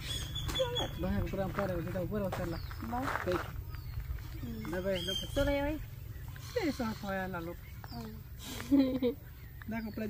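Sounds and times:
low background rumble: 0:00.0 - 0:09.7.

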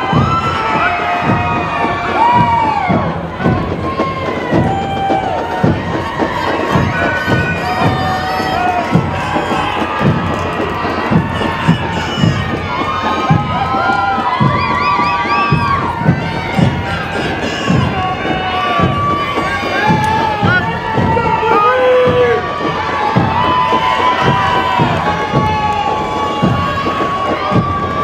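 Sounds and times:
crowd cheering and whooping: 0:00.0 - 0:28.0.

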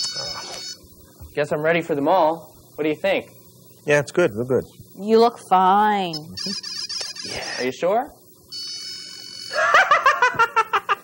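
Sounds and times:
electronic buzzer tone: 0:00.0 - 0:00.8, 0:06.0 - 0:07.7, 0:08.5 - 0:09.6
man laughing: 0:09.5 - 0:11.0.

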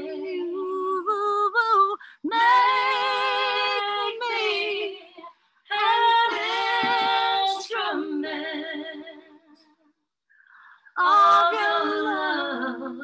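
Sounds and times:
woman singing unaccompanied: 0:00.0 - 0:09.0.

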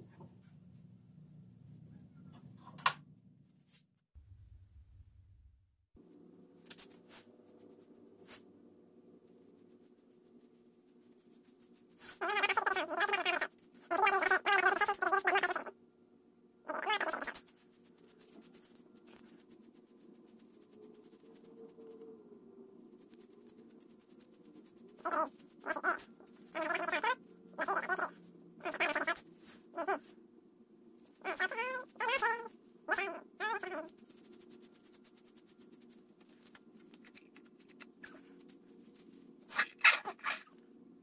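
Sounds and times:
wavering animal calls: 0:12.2 - 0:15.7, 0:16.7 - 0:17.4, 0:25.0 - 0:30.1, 0:31.2 - 0:33.9.

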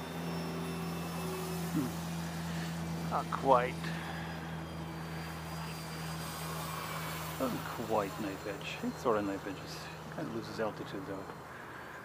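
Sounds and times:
model plane motor droning: 0:00.0 - 0:12.0
steady low hum: 0:00.0 - 0:12.0.

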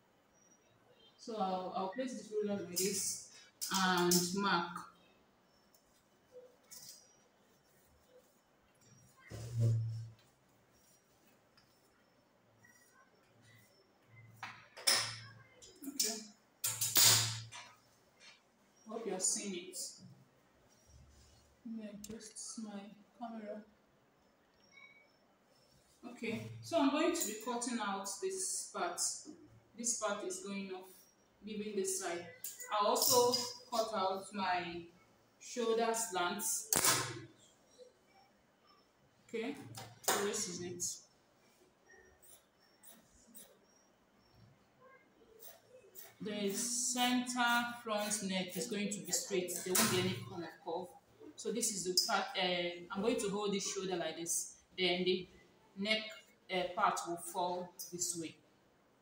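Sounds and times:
faint handling sounds: 0:05.0 - 0:14.4.

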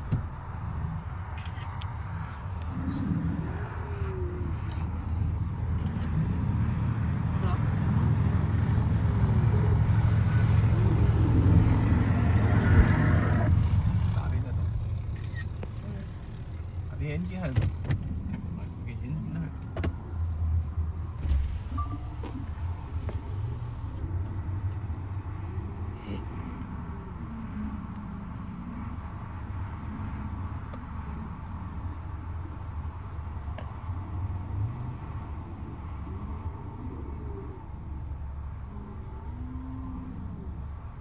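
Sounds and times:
car rumble from inside cabin: 0:00.0 - 0:41.0.

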